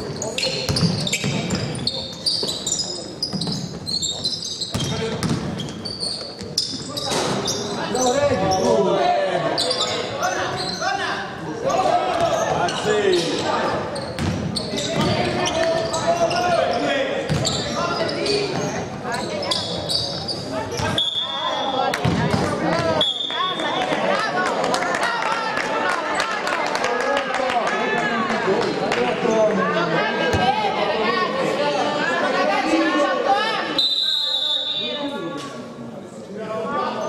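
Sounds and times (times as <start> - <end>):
basketball bouncing on court: 0.7 - 1.7, 4.7 - 5.8, 14.2 - 15.3, 17.3 - 17.6, 22.0 - 23.0
high whistle: 21.0 - 21.8, 23.0 - 23.7, 33.8 - 35.0.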